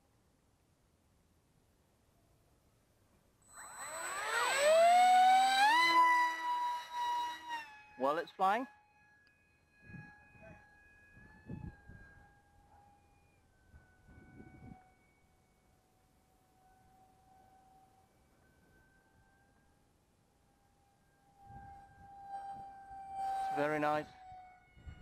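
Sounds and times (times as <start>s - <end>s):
model jet motor whine: 3.4s - 25.0s
wind rumble on microphone: 9.8s - 10.6s, 11.2s - 12.3s, 13.7s - 14.9s, 21.4s - 22.7s, 24.7s - 25.0s.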